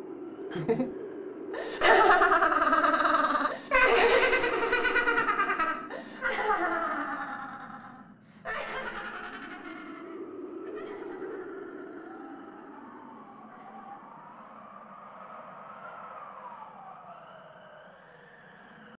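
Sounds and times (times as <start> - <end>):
low steady hum: 0.0 - 13.9
eerie wailing siren-like tones: 0.0 - 19.0.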